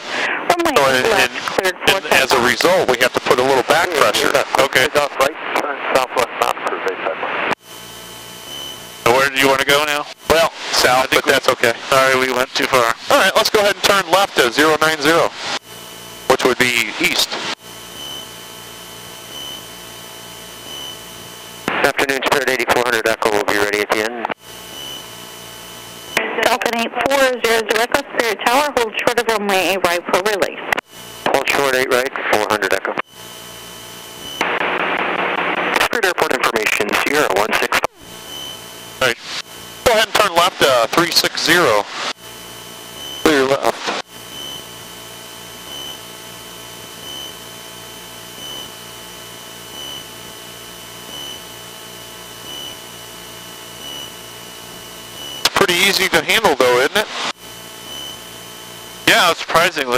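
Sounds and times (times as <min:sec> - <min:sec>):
radio voice transmissions: 0:00.0 - 0:07.6, 0:09.0 - 0:15.6, 0:16.3 - 0:17.6, 0:21.7 - 0:24.4, 0:26.1 - 0:33.1, 0:35.6 - 0:38.0, 0:39.0 - 0:42.2, 0:43.0 - 0:44.0, 0:55.2 - 0:57.3, 0:59.0 - 0:59.9
burst of radio static: 0:00.0 - 0:59.9
aircraft engine drone: 0:07.6 - 0:21.7, 0:38.0 - 0:59.4
faint pulsing high tone: 0:17.6 - 0:21.6, 0:44.1 - 0:55.5, 0:57.4 - 0:59.0.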